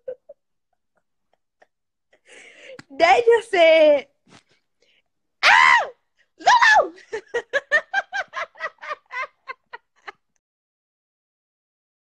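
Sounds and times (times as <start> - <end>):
woman laughing hard: 7.0 - 10.2.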